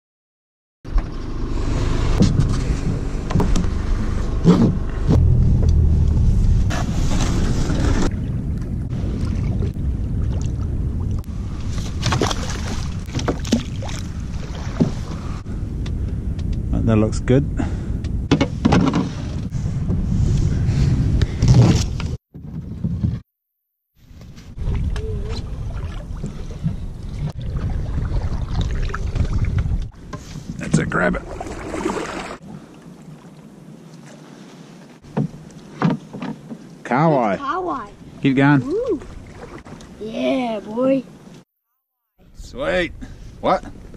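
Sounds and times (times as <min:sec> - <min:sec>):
vehicle engine and road rumble: 0:00.9 - 0:23.3
wind buffeting microphone: 0:01.1 - 0:23.2, 0:24.3 - 0:33.7.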